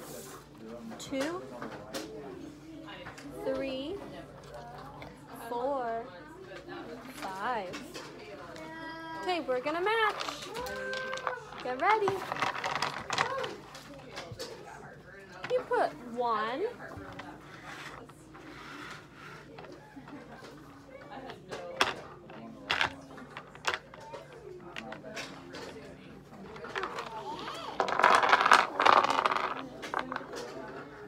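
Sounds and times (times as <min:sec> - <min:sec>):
cubes clattering: 0:09.3 - 0:14.5, 0:21.5 - 0:31.0
cubes clicking on a tabletop: 0:26.6 - 0:30.6.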